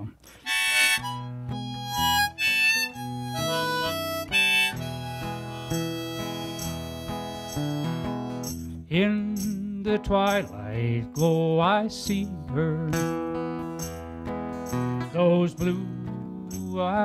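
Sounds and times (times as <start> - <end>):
strummed acoustic guitar: 0.0 - 17.0
harmonica melody: 0.3 - 8.8.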